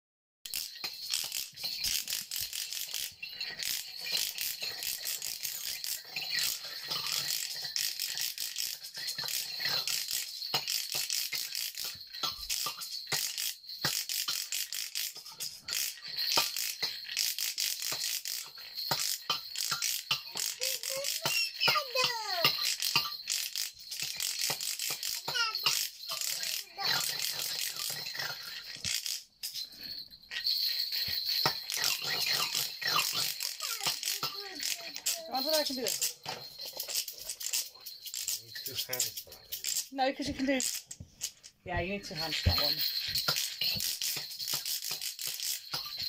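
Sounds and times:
toy percussion rattling and clicking: 0:00.5 - 0:46.0.

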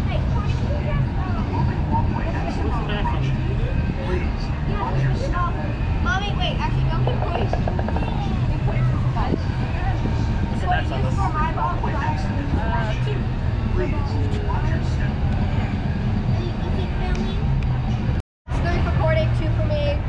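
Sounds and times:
indistinct voices talking: 0:00.0 - 0:20.0
steady low rumble: 0:00.0 - 0:20.0.

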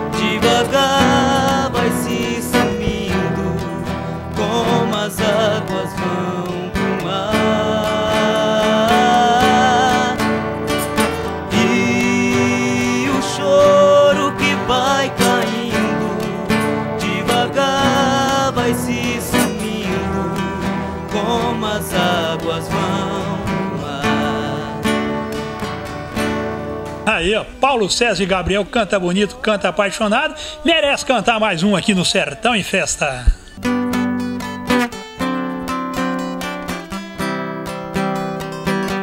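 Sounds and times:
two men singing together: 0:00.0 - 0:25.9
acoustic guitars: 0:00.0 - 0:39.0.

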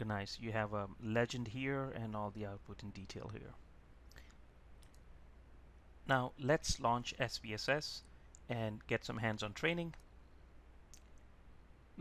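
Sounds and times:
steady low hum: 0:00.0 - 0:12.0
faint clicks: 0:04.0 - 0:05.1, 0:10.9 - 0:11.3.

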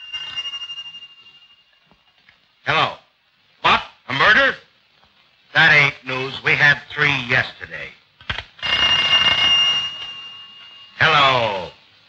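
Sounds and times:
old telephone bell ringing: 0:00.0 - 0:01.8, 0:08.6 - 0:11.8.

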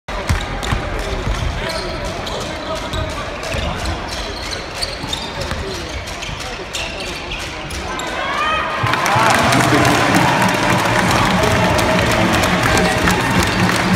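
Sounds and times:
spectators talking and shouting: 0:00.1 - 0:13.9.

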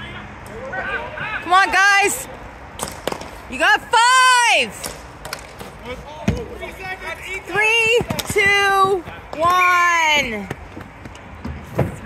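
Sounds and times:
players calling out: 0:00.0 - 0:10.6
hockey sticks and ball clacking: 0:02.7 - 0:12.0.

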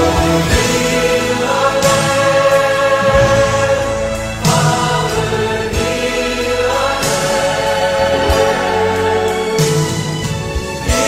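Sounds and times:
choir singing sacred music: 0:00.0 - 0:11.0.

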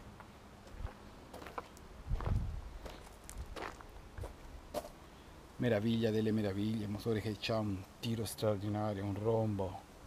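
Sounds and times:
footsteps: 0:00.2 - 0:05.0.

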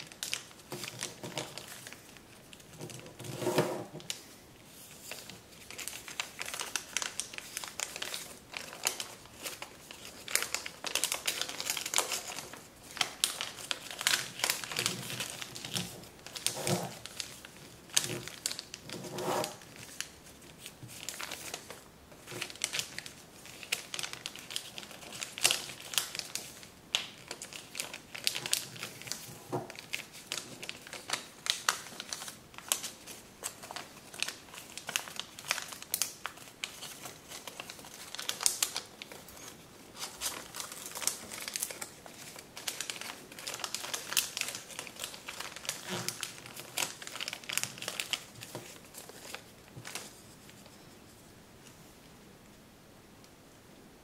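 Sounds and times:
paper crinkling: 0:00.0 - 0:51.0.

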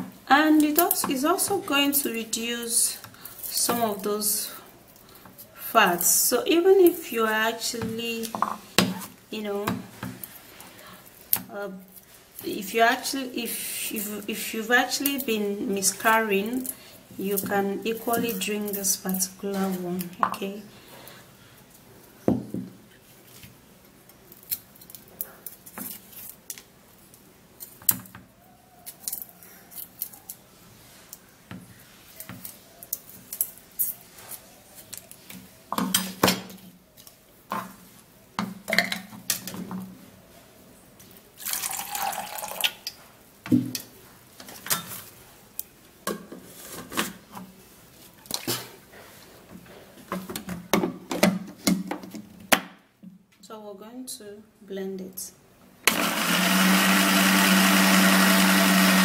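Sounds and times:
garlic peeling clicks and rustles: 0:23.2 - 0:28.1.

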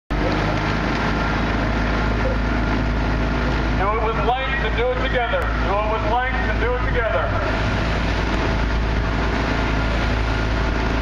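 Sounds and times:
outboard motor humming: 0:00.1 - 0:11.0
wind and water rushing: 0:00.1 - 0:11.0.

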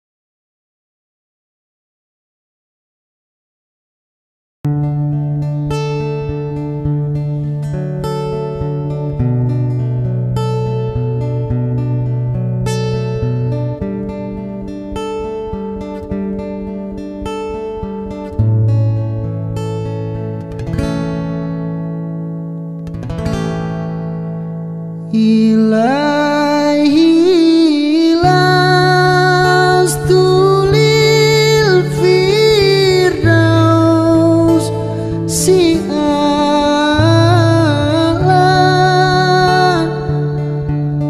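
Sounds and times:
acoustic guitar picked chords: 0:04.7 - 0:41.0
person singing: 0:25.1 - 0:41.0.

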